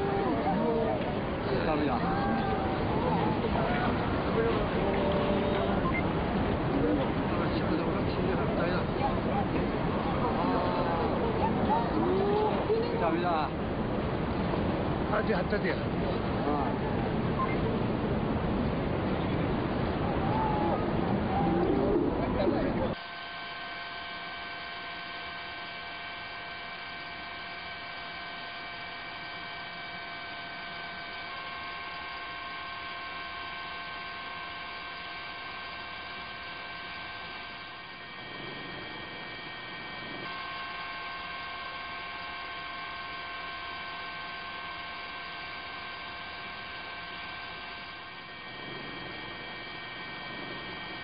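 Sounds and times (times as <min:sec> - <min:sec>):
steady hum of high tones: 0:00.0 - 0:51.0.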